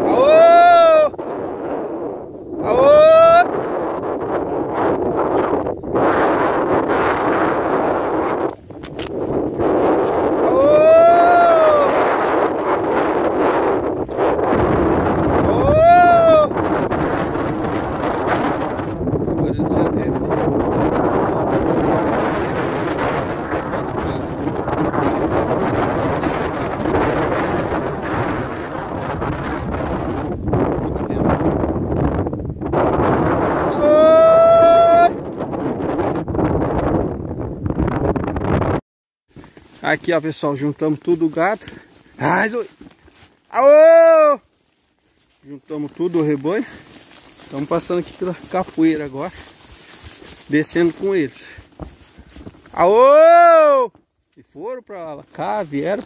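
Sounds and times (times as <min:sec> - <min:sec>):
man shouting herding calls: 0:00.0 - 0:01.1, 0:02.6 - 0:03.5, 0:15.4 - 0:16.6, 0:43.5 - 0:44.4, 0:52.8 - 0:53.9
wind buffeting microphone: 0:00.0 - 0:56.0.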